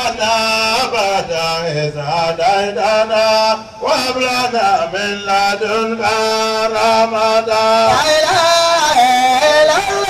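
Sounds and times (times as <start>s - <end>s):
person chanting: 0.0s - 10.0s.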